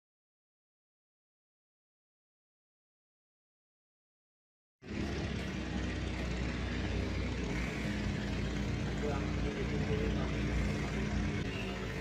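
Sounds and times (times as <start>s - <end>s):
steady low droning noise: 4.8s - 12.0s.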